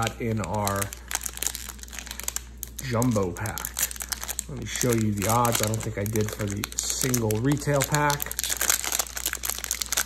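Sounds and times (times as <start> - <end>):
plastic wrapper crinkling: 0.0 - 10.0.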